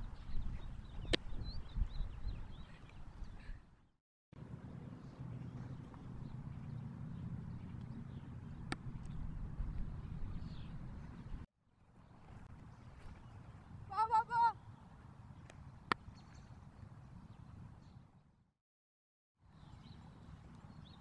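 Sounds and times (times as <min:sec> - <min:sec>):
wind rumble on microphone: 0:00.0 - 0:03.8, 0:04.4 - 0:13.9.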